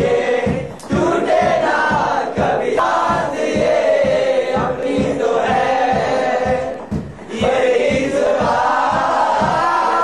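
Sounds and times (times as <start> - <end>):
male voices singing in chorus: 0.0 - 10.0
steady low beat: 0.0 - 10.0.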